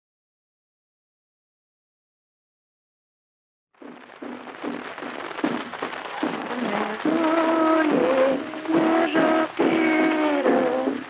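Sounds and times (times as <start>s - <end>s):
dull drum beats: 3.8s - 11.0s
record crackle and hiss: 3.8s - 11.0s.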